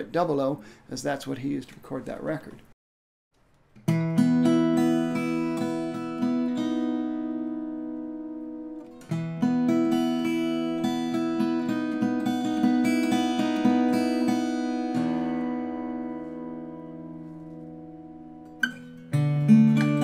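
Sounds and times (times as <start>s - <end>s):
fingerstyle acoustic guitar: 3.8s - 20.0s.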